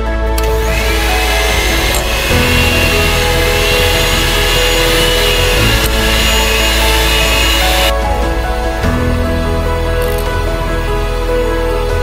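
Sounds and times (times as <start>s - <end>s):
background music: 0.0s - 12.0s
electric hand mixer running: 0.4s - 7.9s
beaters churning in glass bowl: 1.0s - 7.9s.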